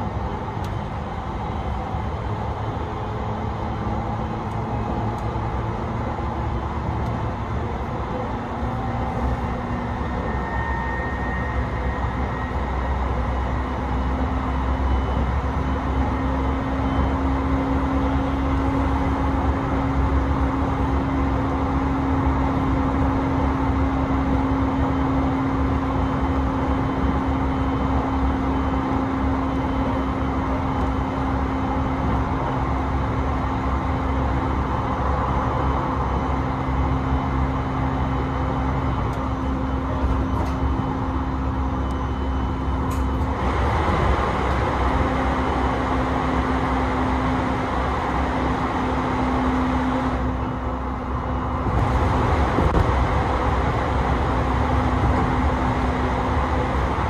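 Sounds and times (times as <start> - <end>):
train rolling noise with hum: 0.0 - 57.0.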